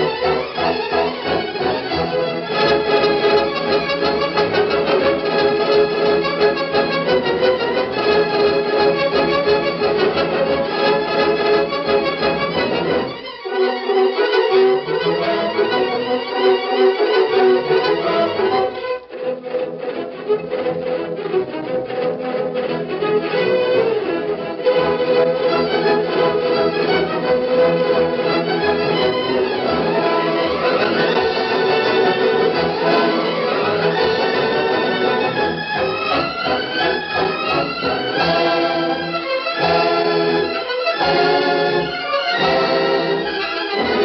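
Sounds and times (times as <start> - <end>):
orchestral music strings and brass: 0.0 - 44.0.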